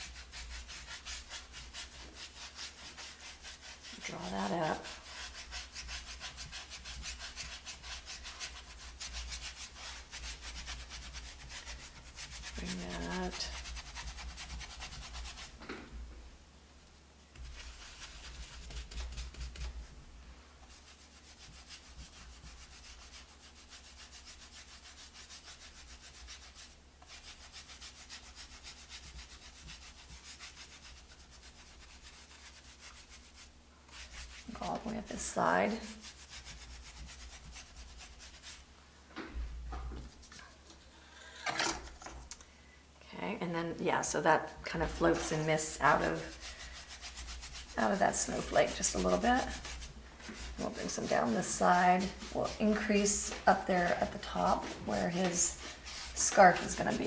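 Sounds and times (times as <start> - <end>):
paintbrush scrubbing on wood: 0.0 - 15.6, 17.3 - 20.0, 20.6 - 38.7, 44.0 - 57.0.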